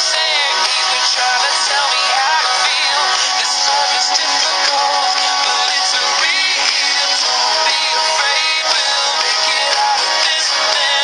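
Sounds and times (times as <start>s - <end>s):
pop country song with singing: 0.0s - 11.0s.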